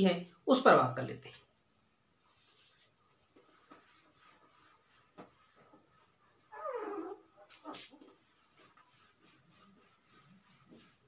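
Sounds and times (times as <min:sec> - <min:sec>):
duster wiping whiteboard: 0:02.1 - 0:11.0
squealing whine sliding down: 0:06.5 - 0:07.2.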